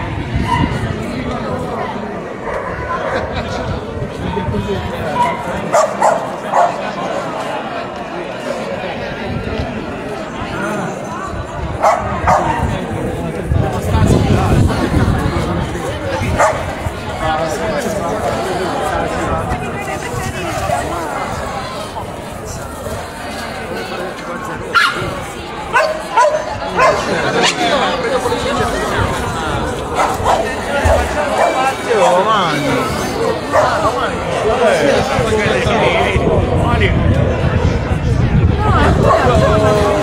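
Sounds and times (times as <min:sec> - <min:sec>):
crowd chatter: 0:00.0 - 0:40.0
dog barking: 0:05.2 - 0:06.8, 0:11.8 - 0:12.6, 0:16.4 - 0:16.6, 0:24.8 - 0:25.0, 0:25.7 - 0:27.1.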